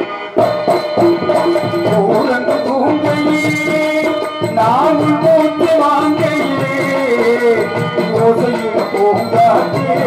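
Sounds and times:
tabla and hand drums: 0.0s - 10.0s.

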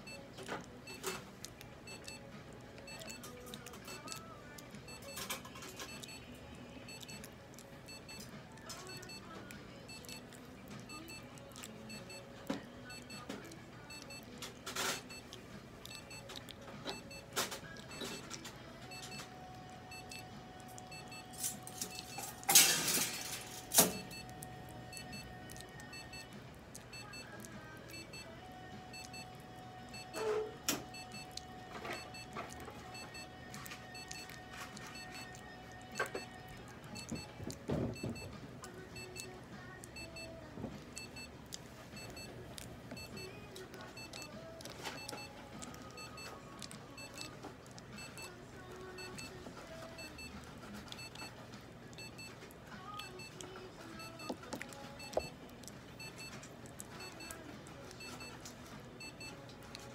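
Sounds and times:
faint background music: 0.0s - 59.9s.

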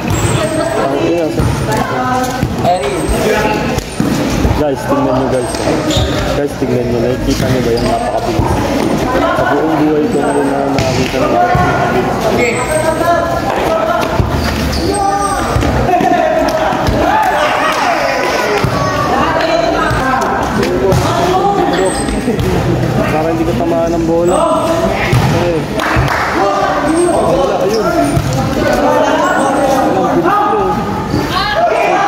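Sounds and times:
voices calling out: 0.0s - 32.0s
players shouting: 7.7s - 23.4s, 24.2s - 32.0s.

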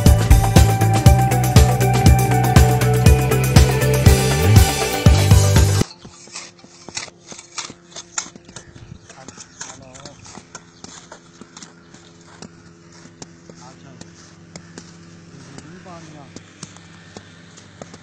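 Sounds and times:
background music: 0.0s - 5.8s.

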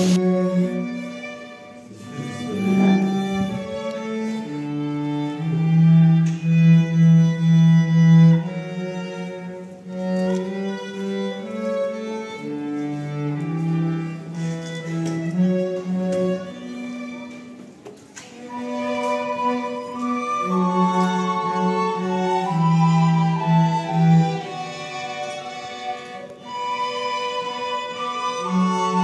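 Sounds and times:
violin and cello playing slowly: 0.0s - 29.0s.

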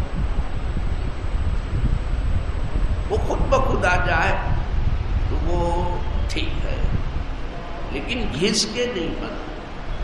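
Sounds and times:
wind buffeting microphone: 0.0s - 10.0s
speech: 3.1s - 4.5s, 5.3s - 6.9s, 7.9s - 9.5s.

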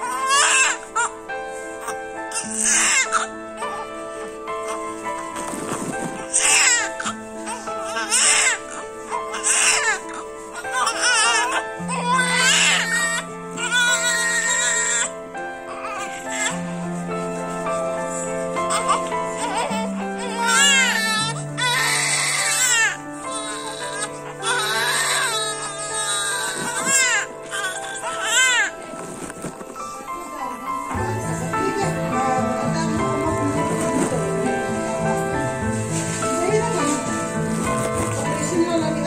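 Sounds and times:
newborn babies crying: 0.0s - 35.7s
background music: 0.0s - 39.0s.

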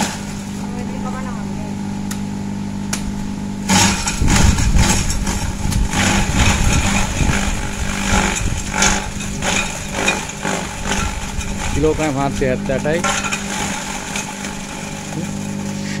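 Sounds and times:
compost shredder engine hum: 0.0s - 16.0s
branches crunching in shredder: 3.0s - 16.0s.

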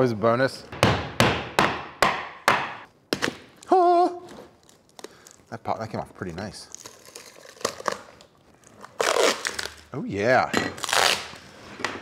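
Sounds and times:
hammer knocking on board: 0.8s - 2.8s.

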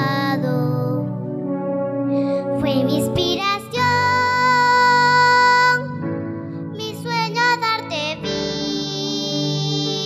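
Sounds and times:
girl singing into a microphone: 0.0s - 1.3s, 2.1s - 10.0s.

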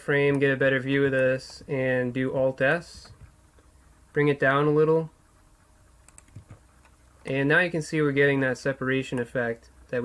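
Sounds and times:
keyboard keys clicking: 6.0s - 6.9s.

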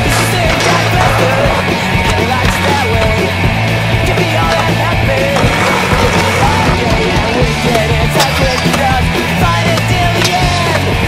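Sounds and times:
music with steady bass line: 0.0s - 11.0s
skateboard clacks: 0.0s - 11.0s
skateboard wheels rolling on concrete: 0.0s - 11.0s.

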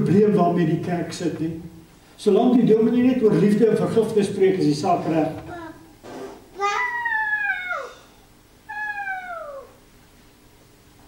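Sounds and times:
high-pitched falling cries: 6.6s - 8.1s, 8.7s - 9.8s.

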